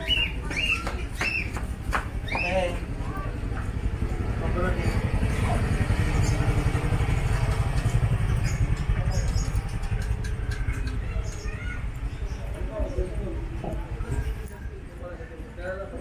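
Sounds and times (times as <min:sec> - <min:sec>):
faint voices: 0:00.0 - 0:16.0
motor scooter engine rumbling: 0:00.0 - 0:16.0.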